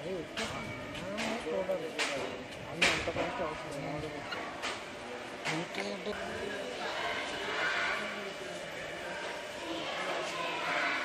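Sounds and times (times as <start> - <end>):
low background noise: 0.0 - 11.0
people talking: 0.0 - 11.0.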